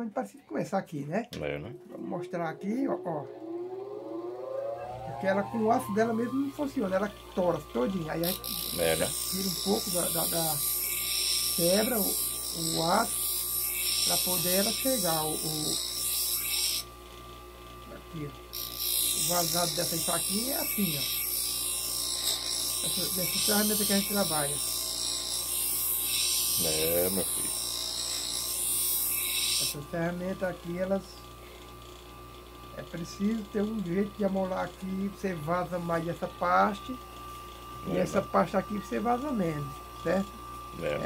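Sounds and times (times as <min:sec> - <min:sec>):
bench grinder motor whine: 0:01.7 - 0:41.0.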